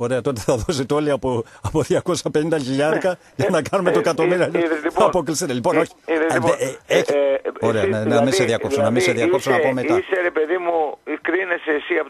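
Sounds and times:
person talking over telephone: 3.8s - 12.0s.

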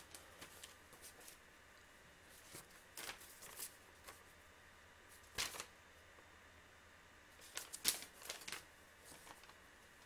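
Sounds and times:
paper sheets rustling: 0.0s - 1.4s, 2.3s - 4.4s, 5.1s - 5.7s, 7.4s - 9.6s.

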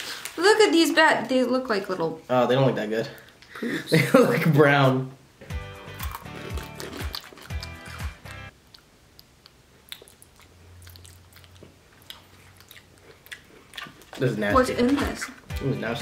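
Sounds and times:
background music: 5.4s - 8.5s, 14.3s - 16.0s
biscuit sticks crunching: 5.8s - 15.4s.

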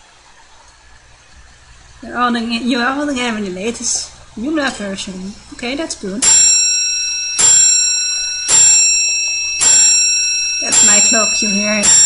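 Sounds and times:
bell ringing: 6.2s - 12.0s.

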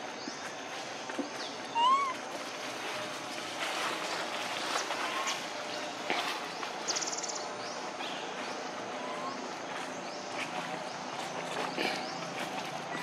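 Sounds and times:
dry leaves crackling and rustling: 1.6s - 13.0s
faint monkey chirps: 1.7s - 2.2s.

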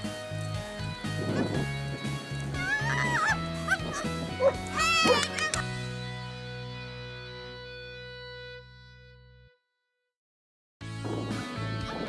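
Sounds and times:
background music: 0.0s - 9.6s, 10.8s - 12.0s.

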